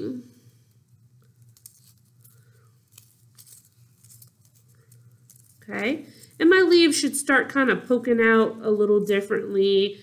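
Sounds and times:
low steady hum: 0:00.0 - 0:10.0
paper rustling and crinkling: 0:01.2 - 0:06.4.

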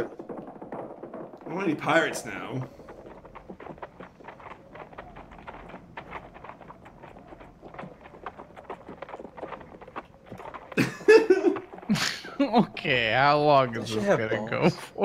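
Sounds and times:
donkey hooves clopping: 0:00.0 - 0:15.0.

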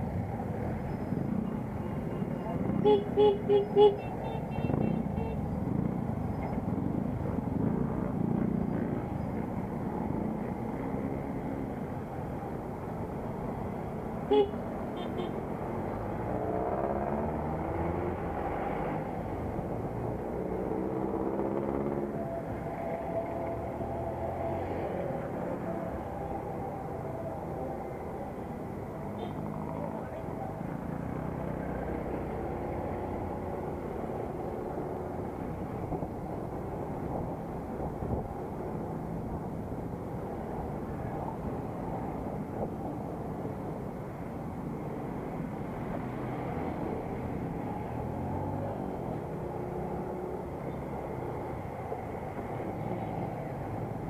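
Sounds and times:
road and wind noise: 0:00.0 - 0:54.0.

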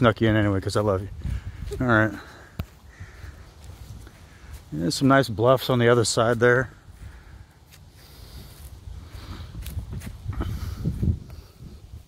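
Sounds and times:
soft rustles of brush and grass: 0:00.0 - 0:12.0.

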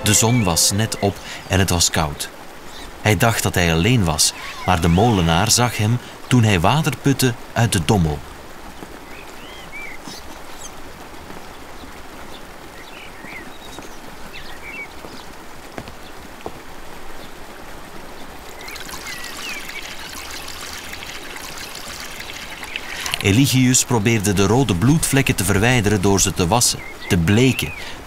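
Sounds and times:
faint chirps: 0:00.0 - 0:01.9, 0:04.1 - 0:05.5, 0:18.6 - 0:23.5
water pouring into wooden tub: 0:18.6 - 0:24.9.

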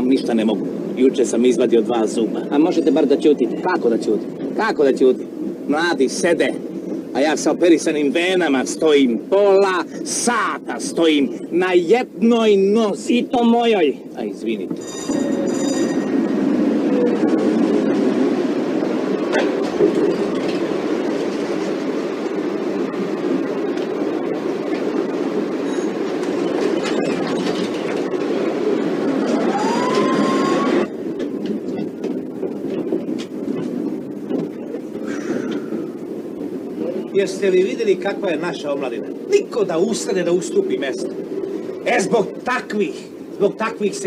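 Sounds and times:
tram rumbling on rails: 0:00.0 - 0:44.0
rising squeal: 0:14.8 - 0:17.2, 0:25.6 - 0:26.0, 0:29.2 - 0:30.9.

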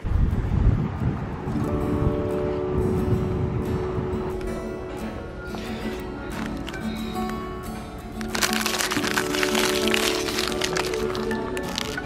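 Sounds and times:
background music: 0:01.6 - 0:12.0
plastic bags crinkling: 0:05.9 - 0:07.2, 0:08.2 - 0:12.0.

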